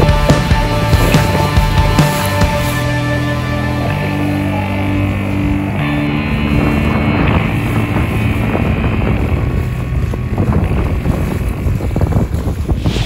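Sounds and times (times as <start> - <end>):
boat engine hum: 0.0 - 13.0
choppy water splashing: 0.0 - 13.0
wind buffeting microphone: 0.0 - 13.0.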